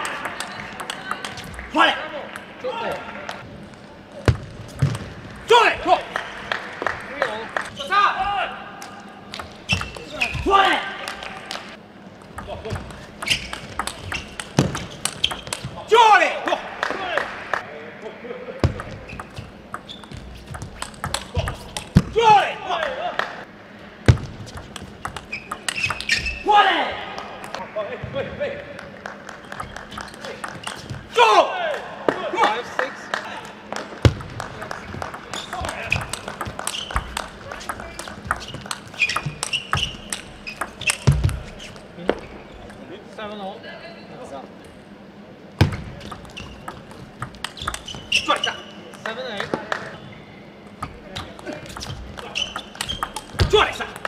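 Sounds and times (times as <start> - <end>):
table tennis ball clicking: 12.2 - 15.7, 18.8 - 22.0, 24.1 - 26.2, 29.3 - 31.0, 34.1 - 41.4, 46.0 - 49.2, 50.8 - 54.0
player shouting: 22.1 - 23.2, 31.1 - 32.6.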